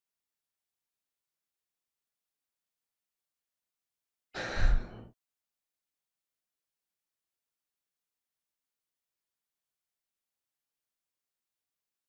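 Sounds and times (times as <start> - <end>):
man gasping: 4.4 - 5.1.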